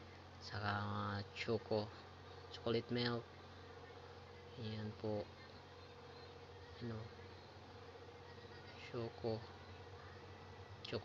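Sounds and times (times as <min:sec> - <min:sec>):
low electrical hum: 0:00.0 - 0:11.0
person speaking: 0:04.5 - 0:05.6.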